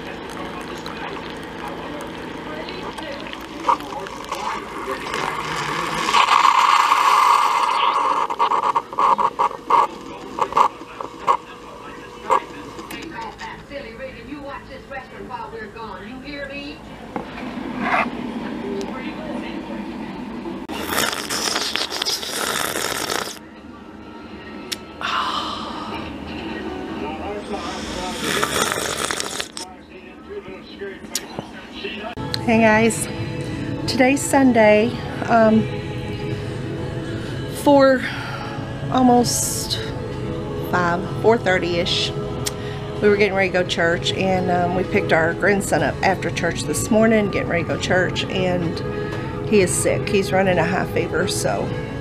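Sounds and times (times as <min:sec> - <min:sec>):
coffee maker pouring hiss: 0:00.0 - 0:11.4, 0:20.7 - 0:23.4, 0:27.5 - 0:29.6
small vocal sounds: 0:00.0 - 0:11.4, 0:20.7 - 0:23.4, 0:27.4 - 0:29.6
coffee maker sputtering: 0:00.0 - 0:13.2, 0:20.7 - 0:23.4, 0:27.5 - 0:29.6
woman blowing on hot coffee: 0:20.8 - 0:23.4.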